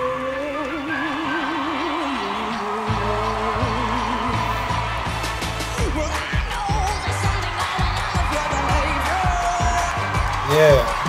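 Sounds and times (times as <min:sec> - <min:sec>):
female singer with vibrato: 0:00.0 - 0:05.0
bass and drums: 0:02.9 - 0:11.0.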